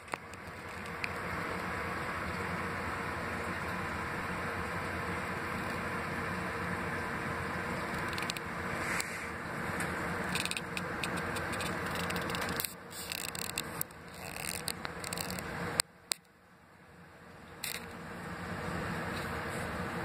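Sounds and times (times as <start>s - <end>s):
device handling scrapes and clicks: 7.9s - 9.2s, 10.3s - 16.3s, 17.6s - 18.0s.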